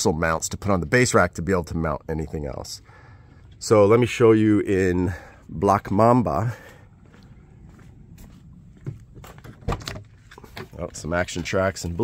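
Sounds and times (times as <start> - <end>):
footsteps: 6.2 - 12.0
handling noises: 8.2 - 12.0.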